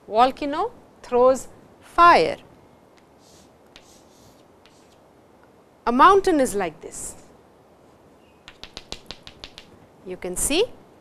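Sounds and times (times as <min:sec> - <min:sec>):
chalk tapping on blackboard: 0:03.2 - 0:05.0, 0:08.4 - 0:09.8.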